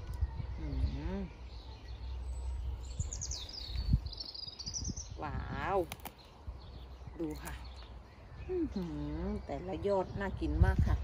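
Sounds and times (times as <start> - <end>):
songbird trilling: 0.2 - 11.0.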